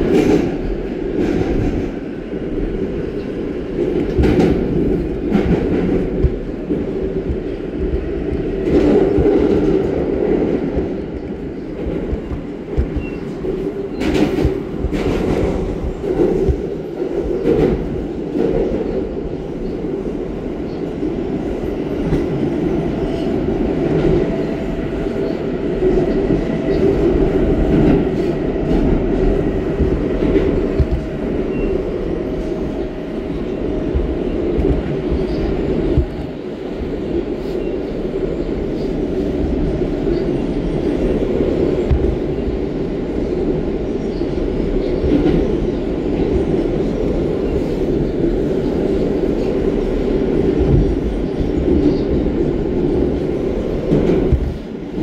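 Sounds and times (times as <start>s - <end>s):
subway wheels rumbling on rail: 0.0s - 55.0s
clacks over rail joints: 3.8s - 19.0s, 25.9s - 31.7s.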